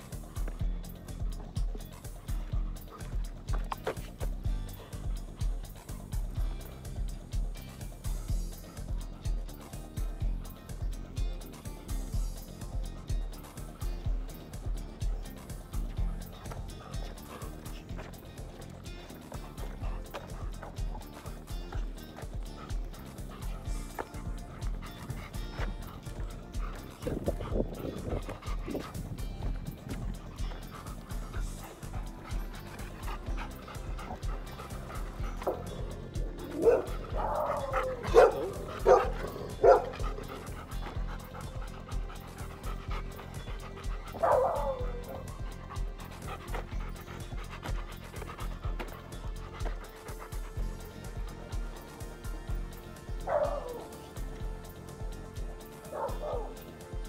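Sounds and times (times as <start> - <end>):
background music with steady beat: 0.0 - 57.0
dog barking: 35.3 - 40.8, 44.1 - 45.6, 53.2 - 54.0, 55.8 - 56.7.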